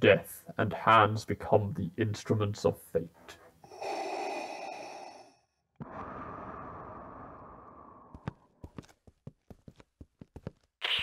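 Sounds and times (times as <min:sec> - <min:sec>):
mechanical respirator breathing: 0:03.6 - 0:08.1.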